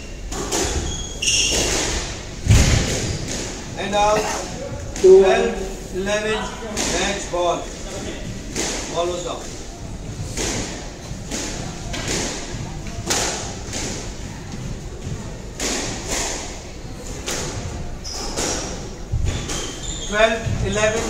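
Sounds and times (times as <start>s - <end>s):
squash ball thuds echoing: 0.2s - 5.8s, 6.6s - 21.0s.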